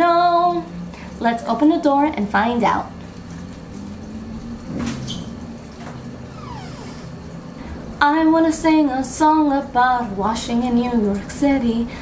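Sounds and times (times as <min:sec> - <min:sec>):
washing machine humming: 0:00.0 - 0:12.0
falling whine: 0:03.1 - 0:08.1.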